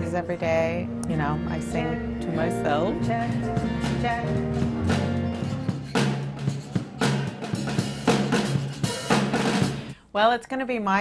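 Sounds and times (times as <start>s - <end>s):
rock band playing: 1.6s - 10.0s
drum kit hits: 2.3s - 10.0s.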